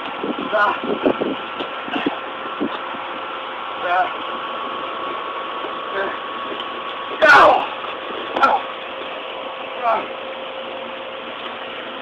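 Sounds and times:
steady engine-like hum: 0.0 - 12.0.

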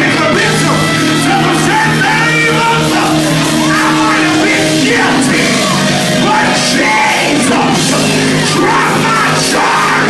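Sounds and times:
loud church music: 0.0 - 10.0
preacher singing and shouting: 0.0 - 10.0.

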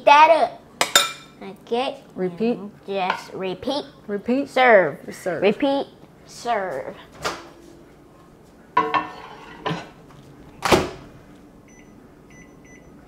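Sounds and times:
microwave humming: 7.1 - 13.0
microwave door clunks: 10.6 - 11.1.

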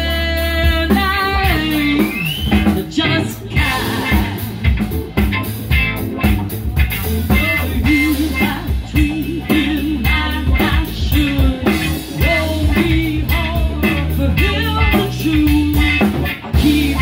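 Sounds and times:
drum kit with cymbal strokes: 0.0 - 17.0
electric bass: 0.0 - 17.0
electric guitar: 0.0 - 17.0.

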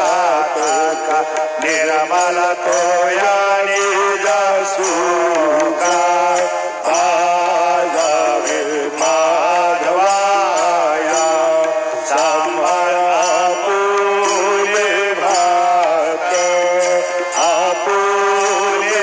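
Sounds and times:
bells ringing: 0.0 - 19.0
voices singing chanted melody: 0.0 - 19.0.

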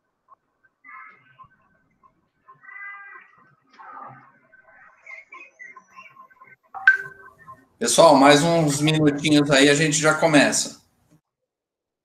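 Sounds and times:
quiet pitched animal calls: 0.8 - 6.6.

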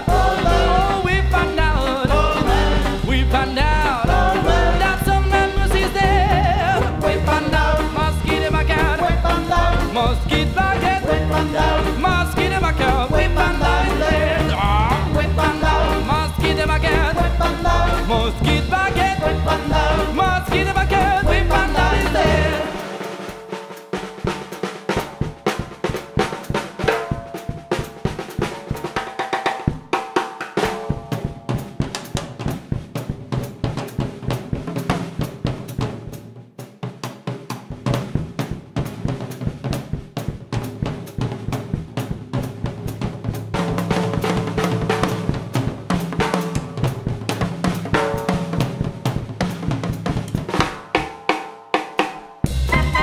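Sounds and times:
band accompaniment: 0.0 - 53.0
swing drum kit solo: 0.0 - 53.0.

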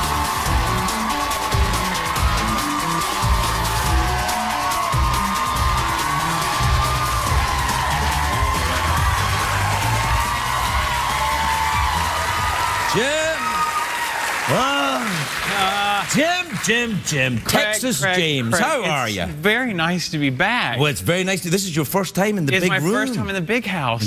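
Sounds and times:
band music with steady beat: 0.0 - 12.6
audience applauding and cheering: 0.0 - 18.9.

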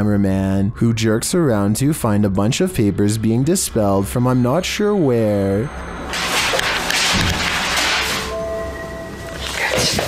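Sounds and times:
papers rustling and flapping: 6.1 - 8.3, 9.3 - 10.0.

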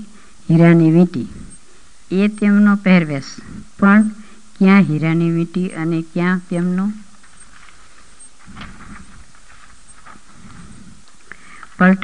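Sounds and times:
faint background noise: 0.0 - 12.0.

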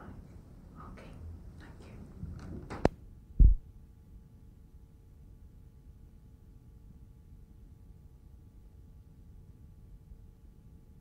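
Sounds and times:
faint steady hum: 0.0 - 11.0
dull low thump: 3.4 - 3.6.

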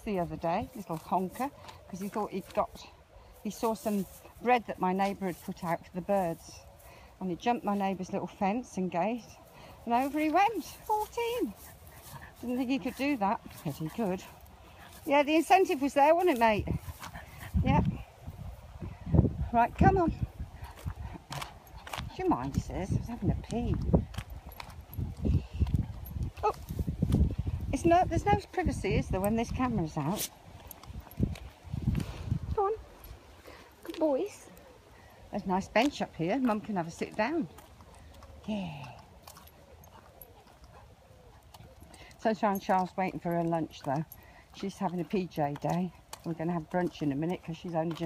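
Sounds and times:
footsteps on gravel: 0.0 - 18.3, 19.7 - 34.6, 35.4 - 48.0.

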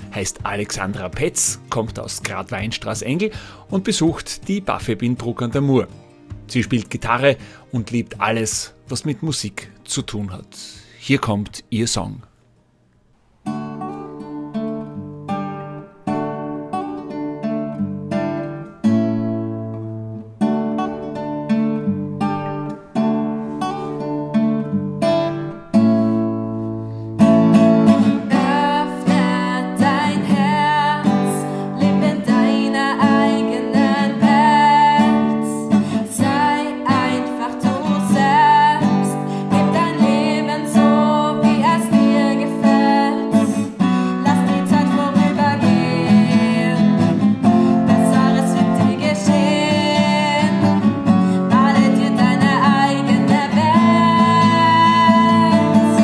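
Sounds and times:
classical guitar chords: 0.0 - 7.8, 13.4 - 56.0
young woman singing: 28.1 - 56.0.

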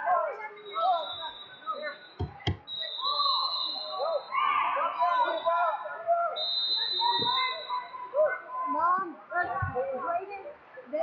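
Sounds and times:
voices: 0.0 - 11.0
dull thumps: 2.2 - 2.6.

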